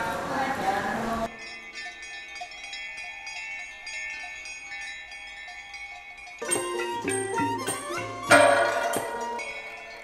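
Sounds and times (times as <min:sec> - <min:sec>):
bell-like strikes: 0:01.3 - 0:10.0
chime-like electronic tones: 0:06.4 - 0:10.0.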